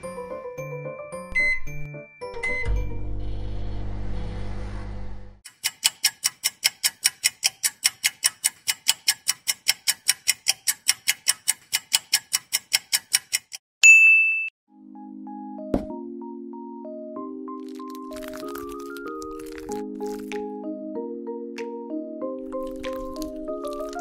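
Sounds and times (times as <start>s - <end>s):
kitchen timer ticking: 5.4s - 13.6s
timer bright ding: 13.8s - 14.5s.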